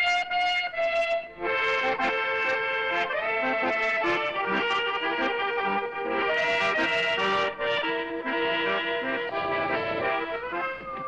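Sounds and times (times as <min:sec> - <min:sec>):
brass melody: 0:00.0 - 0:11.0
fuller musical accompaniment: 0:00.0 - 0:11.0.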